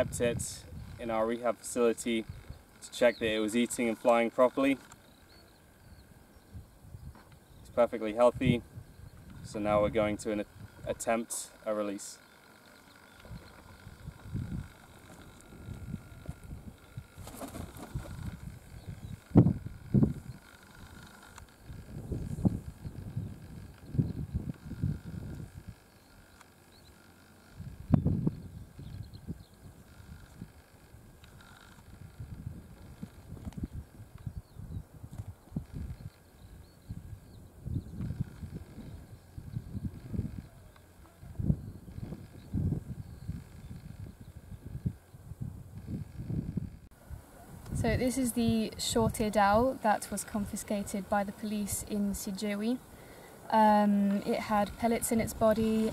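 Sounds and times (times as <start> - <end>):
wind rumbling on microphone: 0.0 - 1.3, 2.0 - 3.4, 5.6 - 11.0, 13.2 - 26.2, 27.5 - 55.9
wind thumps: 13.3 - 21.0.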